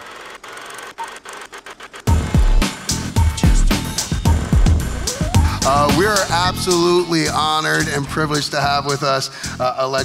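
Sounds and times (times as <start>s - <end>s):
film projector whirring and crackle: 0.0s - 5.2s.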